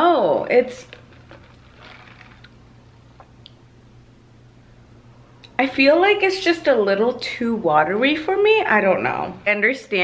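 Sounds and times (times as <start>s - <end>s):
low room hum: 0.0s - 10.0s
sipping from plastic cup: 0.9s - 2.6s.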